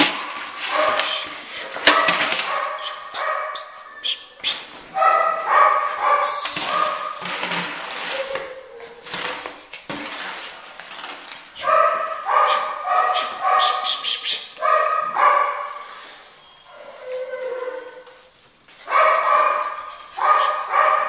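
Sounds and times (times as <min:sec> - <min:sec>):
puppy yapping: 0:01.9 - 0:07.2, 0:11.6 - 0:16.0, 0:18.9 - 0:21.0.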